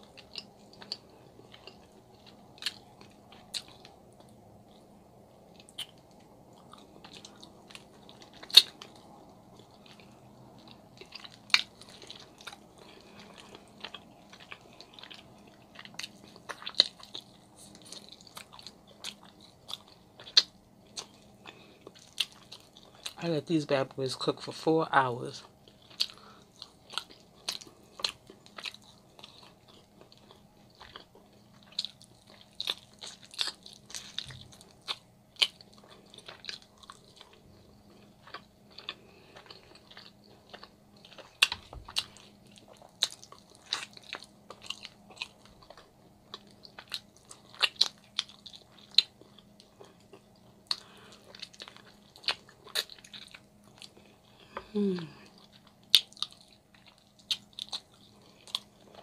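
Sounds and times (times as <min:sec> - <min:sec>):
chewing meat off a bone: 0:00.0 - 0:23.2, 0:24.7 - 0:59.0
person humming mm-hmm: 0:54.5 - 0:55.4.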